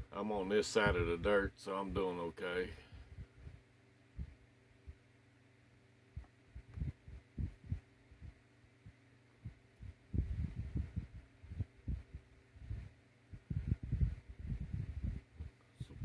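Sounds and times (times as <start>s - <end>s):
breath puffs on microphone: 13.4s - 15.3s.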